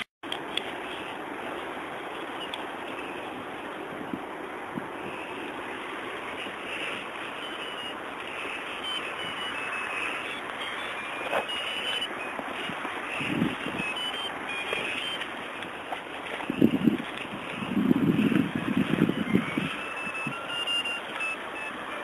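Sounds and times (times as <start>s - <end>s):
wind on microphone: 3.0s - 22.0s
short high chirps: 7.4s - 15.3s, 19.4s - 21.9s.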